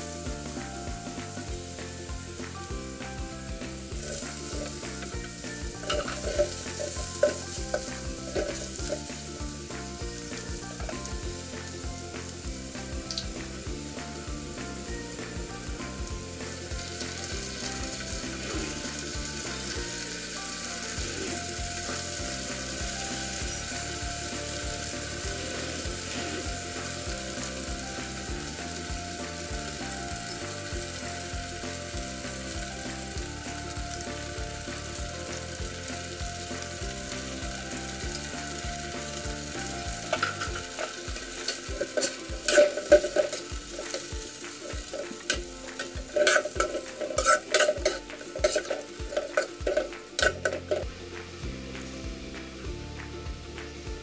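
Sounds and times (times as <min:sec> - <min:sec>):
food sizzling in a pan: 0:00.0 - 0:54.0
spatula scraping a pan: 0:03.9 - 0:09.3, 0:20.7 - 0:28.2, 0:39.7 - 0:50.9.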